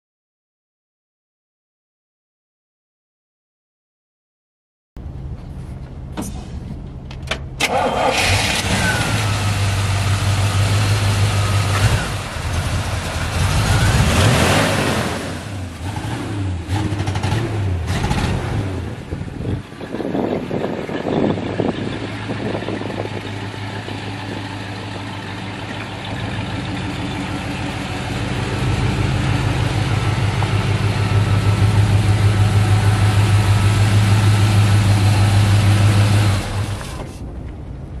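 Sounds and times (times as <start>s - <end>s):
pickup truck engine revving and idling: 7.9s - 37.3s.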